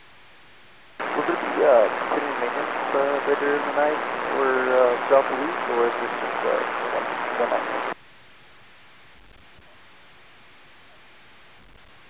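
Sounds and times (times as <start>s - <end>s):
radio hiss: 1.0s - 8.0s
radio static burst: 1.0s - 8.0s
voice over radio: 1.0s - 8.0s.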